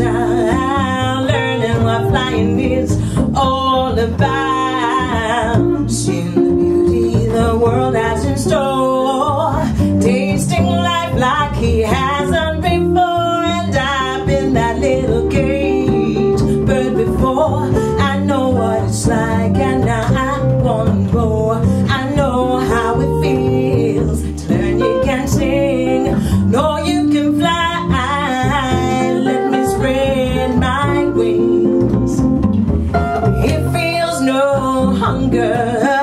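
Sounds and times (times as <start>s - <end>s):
woman singing with vibrato: 0.0s - 32.3s, 33.2s - 36.0s
acoustic guitar: 0.0s - 36.0s
plucked double bass: 0.0s - 36.0s.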